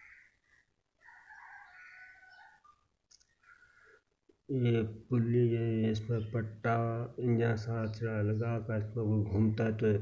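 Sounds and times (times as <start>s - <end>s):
faint distant bird call: 0.0s - 4.1s.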